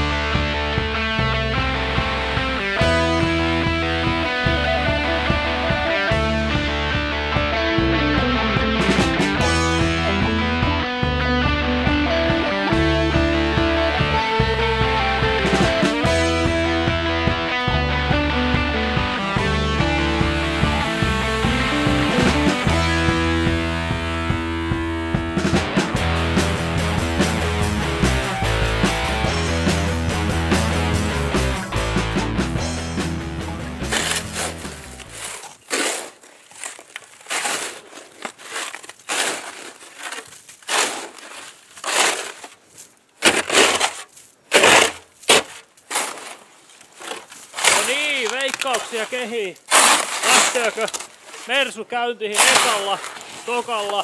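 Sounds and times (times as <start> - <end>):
rock guitar music: 0.0 - 35.2
snow tool scraping snow off car: 33.8 - 54.0.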